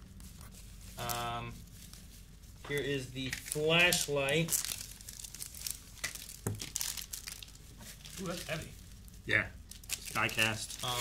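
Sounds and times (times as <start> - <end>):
plastic packaging crinkling: 0.2 - 11.0.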